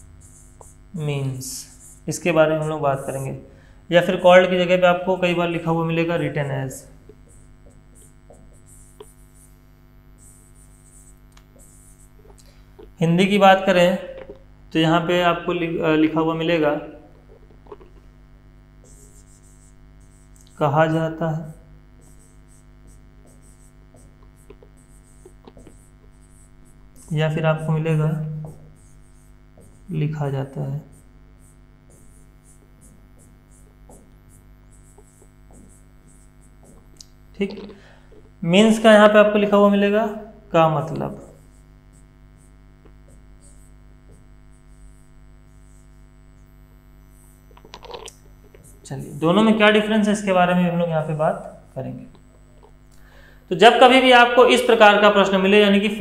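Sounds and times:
pen writing on board: 0:00.0 - 0:00.8, 0:07.1 - 0:09.6, 0:10.2 - 0:12.4, 0:18.8 - 0:20.4, 0:22.0 - 0:29.9, 0:30.8 - 0:37.7, 0:40.8 - 0:45.9
electrical mains hum: 0:00.0 - 0:56.0.

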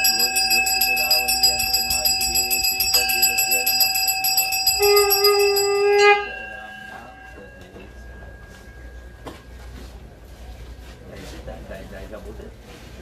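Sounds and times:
hand bell ringing rapidly: 0:00.0 - 0:09.3
steady held tone: 0:00.0 - 0:10.8.

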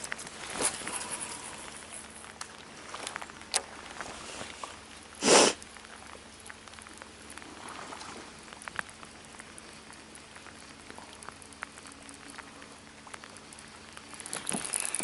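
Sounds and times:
rain falling on water: 0:00.0 - 0:15.0.

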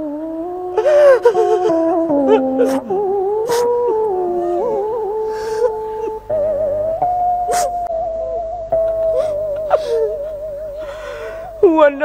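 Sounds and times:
long wavering musical note: 0:00.0 - 0:11.7.

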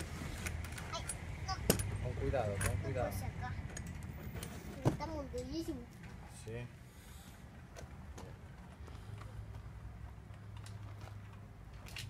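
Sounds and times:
bicycle parts clicking and knocking: 0:00.4 - 0:02.8, 0:07.7 - 0:12.0.

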